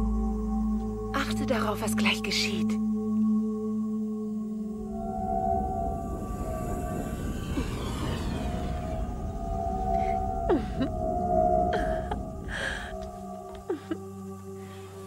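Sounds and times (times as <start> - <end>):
eerie humming tones: 2.8 - 15.0
low rumble: 4.4 - 14.6
hissing swells: 4.6 - 15.0
falling glides: 4.7 - 14.0.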